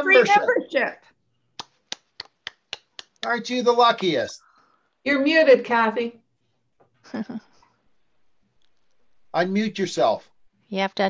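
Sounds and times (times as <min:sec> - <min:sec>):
sharp hand claps: 0:01.6 - 0:04.2.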